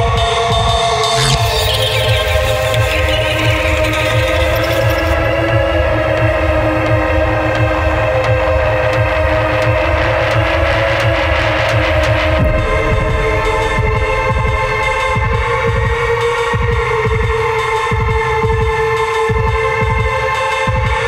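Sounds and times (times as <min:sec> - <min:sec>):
pulsing bass: 0:01.1 - 0:19.7
sustained synth tones: 0:01.2 - 0:05.8, 0:12.2 - 0:17.8.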